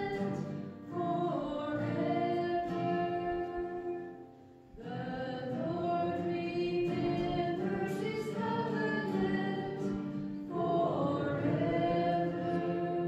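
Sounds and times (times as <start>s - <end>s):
church choir singing: 0.0s - 13.0s.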